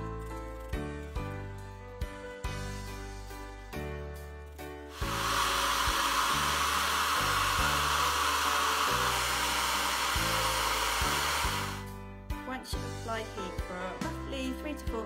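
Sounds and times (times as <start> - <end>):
background music: 0.0 - 15.0
hair dryer blowing: 4.9 - 11.9.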